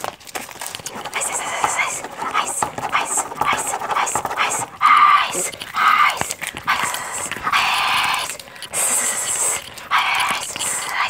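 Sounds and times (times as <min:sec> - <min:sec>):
breathy whispering: 0:00.8 - 0:11.0.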